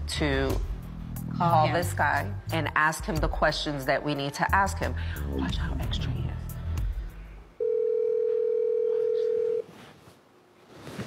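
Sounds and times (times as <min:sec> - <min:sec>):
telephone ringback tone: 0:07.6 - 0:09.7.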